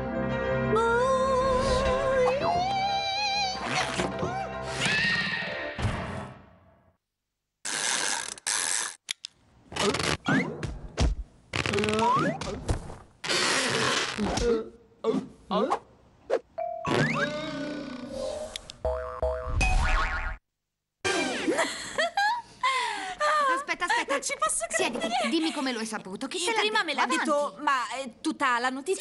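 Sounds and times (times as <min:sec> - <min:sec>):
cartoon boing sound effects: 0:16.8 - 0:17.9, 0:18.9 - 0:20.4.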